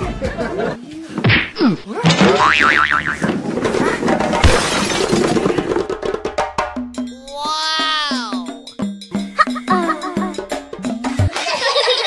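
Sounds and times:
cartoon spring boing: 2.0 - 3.2.

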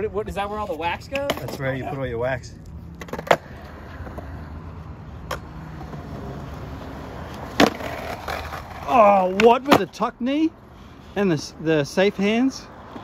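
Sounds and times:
skateboard wheels rolling on concrete: 0.0 - 13.0
skateboard clacking on ground: 0.7 - 1.8, 2.9 - 4.3, 7.2 - 10.0.

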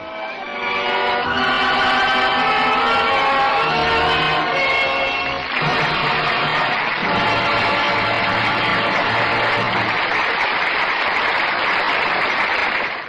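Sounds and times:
orchestral music: 0.0 - 10.3.

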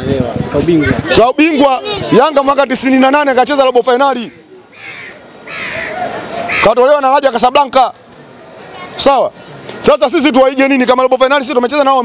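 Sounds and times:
bird calling: 4.1 - 6.9.

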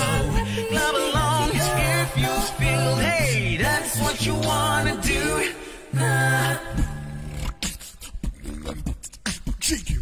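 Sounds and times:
beatboxing clicks and snare hits: 7.2 - 10.0.

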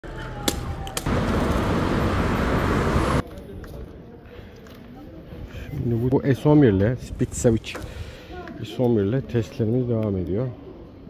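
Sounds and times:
wind and road noise on microphone: 0.2 - 3.2.

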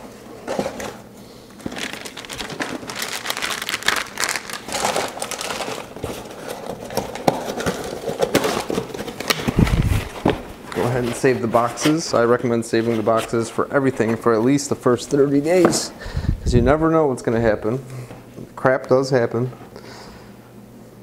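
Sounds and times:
plastic packaging crinkling: 0.4 - 12.4.

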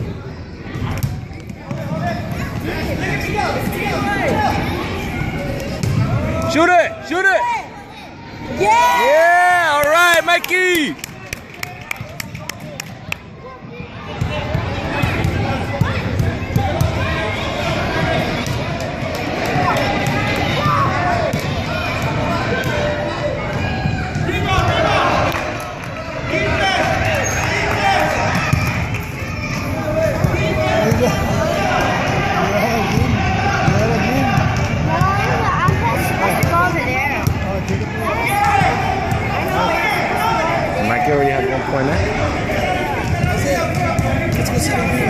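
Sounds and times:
children's voices and chatter: 0.0 - 6.6, 7.5 - 9.1, 11.8 - 45.0.

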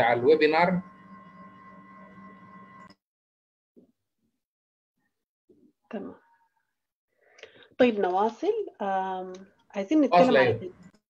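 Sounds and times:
thin high whine: 0.0 - 3.0.

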